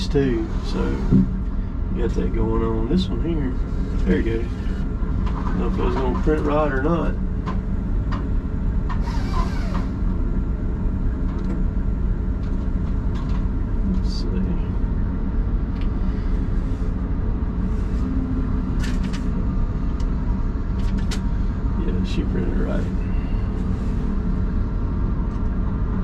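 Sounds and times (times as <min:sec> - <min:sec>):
diesel engine idling: 0:00.0 - 0:26.0.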